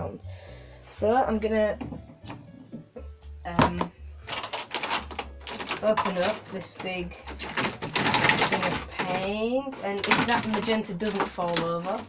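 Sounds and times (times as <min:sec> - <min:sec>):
plastic clicking and rattling: 0:03.6 - 0:12.0.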